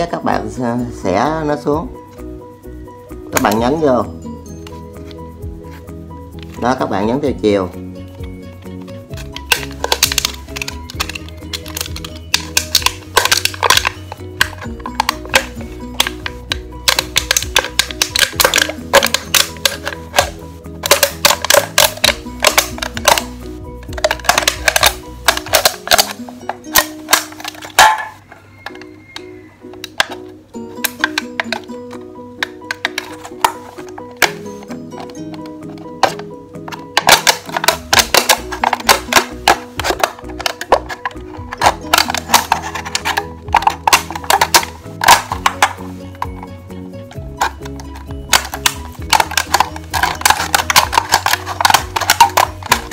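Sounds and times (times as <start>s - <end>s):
background music: 0.0s - 52.9s
knife blade cutting aluminium can: 9.1s - 28.2s, 30.8s - 46.4s, 47.4s - 52.9s.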